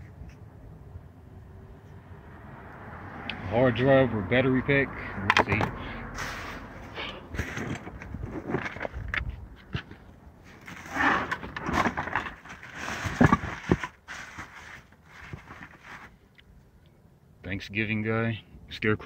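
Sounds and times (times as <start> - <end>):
plastic bags rustling and crinkling: 10.5 - 16.2
objects knocking and clattering: 10.6 - 14.5.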